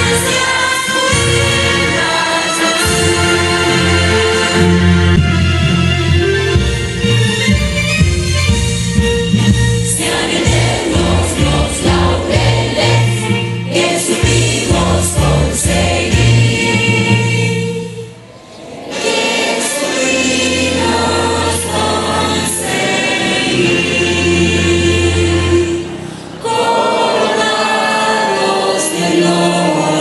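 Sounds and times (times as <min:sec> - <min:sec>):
choir singing: 0:00.0 - 0:05.1, 0:09.8 - 0:30.0
instrumental accompaniment with bass: 0:00.0 - 0:18.3, 0:19.9 - 0:26.1.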